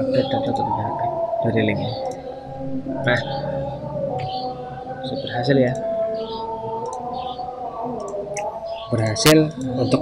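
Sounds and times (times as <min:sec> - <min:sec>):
drone of held tones: 0:00.0 - 0:10.0.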